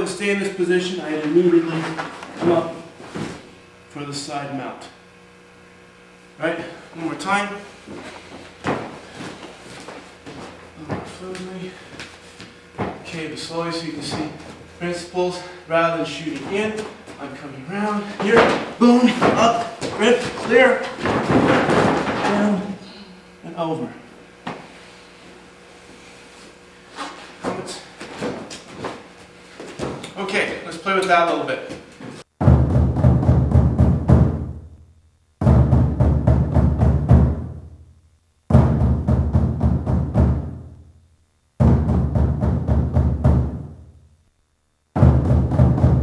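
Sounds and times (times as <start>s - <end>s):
bodies scuffing on foam mats: 1.7s - 3.5s, 7.8s - 13.2s, 25.9s - 30.5s
body thumping on mat: 1.9s - 3.5s, 7.9s - 11.3s, 12.0s - 13.1s, 18.2s - 22.5s, 27.4s - 29.0s, 29.6s - 30.1s.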